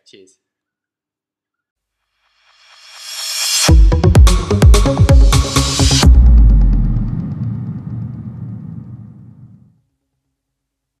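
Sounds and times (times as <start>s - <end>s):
low electronic rumble: 3.7s - 9.7s.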